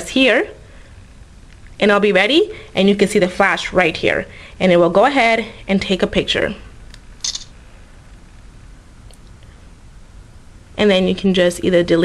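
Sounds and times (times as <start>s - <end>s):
phone camera shutter click: 7.2s - 7.6s.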